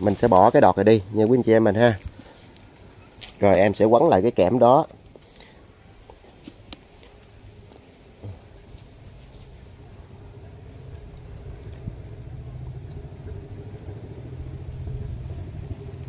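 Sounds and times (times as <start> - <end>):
faint steady high tone: 0.0 - 16.0
vehicle engine rumble passing: 8.9 - 16.0.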